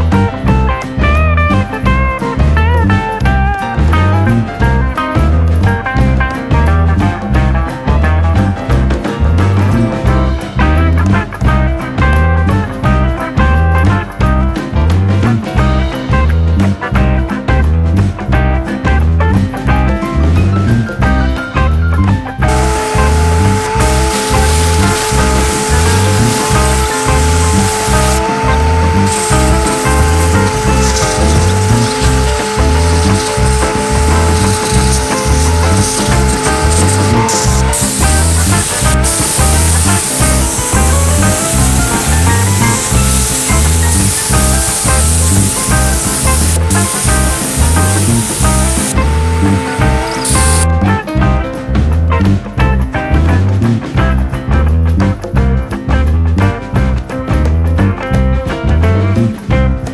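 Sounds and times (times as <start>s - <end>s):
background music with steady beat: 0.0s - 59.9s
sandblaster hissing: 22.5s - 50.6s.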